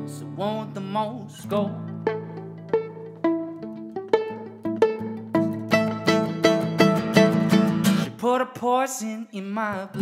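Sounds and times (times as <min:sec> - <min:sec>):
plucked violin: 0:00.0 - 0:08.2
acoustic guitar: 0:00.0 - 0:10.0.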